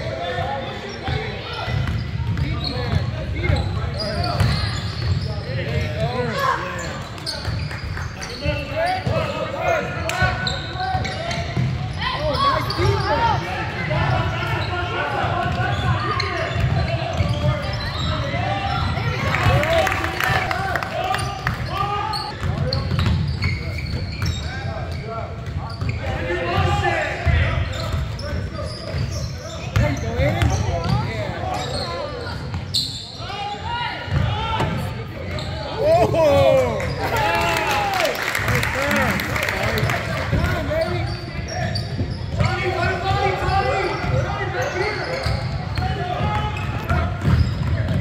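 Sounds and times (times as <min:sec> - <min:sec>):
people shouting in a hall: 0:35.6 - 0:39.8.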